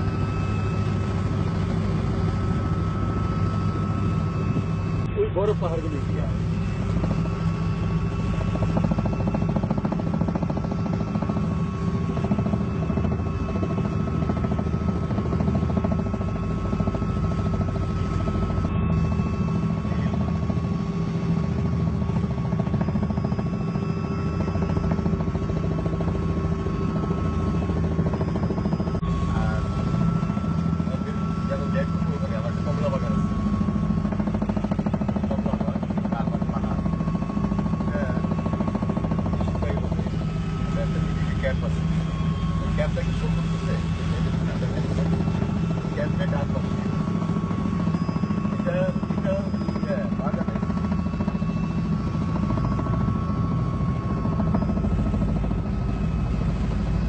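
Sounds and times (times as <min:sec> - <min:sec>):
constant whining tones: 0:00.0 - 0:57.0
helicopter engine and rotor drone: 0:00.0 - 0:57.0.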